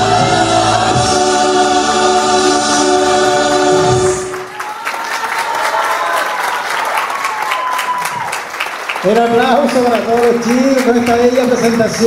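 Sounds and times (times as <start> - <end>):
singers holding a chord: 0.0 - 4.5
audience applauding: 4.2 - 12.0
high cheer: 4.3 - 11.0.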